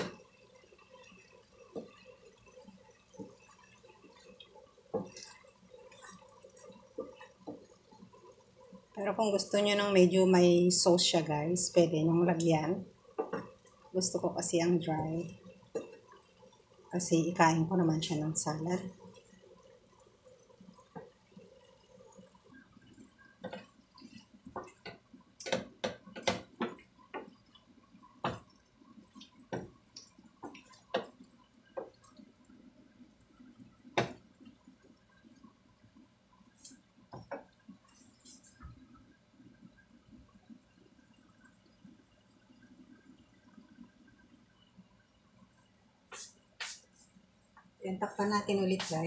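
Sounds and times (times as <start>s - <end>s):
wooden spoon stirring in frying pan: 0.0s - 9.9s, 13.0s - 20.2s, 20.8s - 32.4s, 48.1s - 49.0s.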